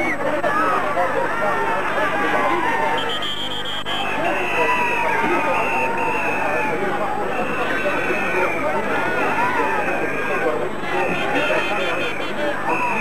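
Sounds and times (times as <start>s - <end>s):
crowd voices talking and calling: 0.0s - 13.0s.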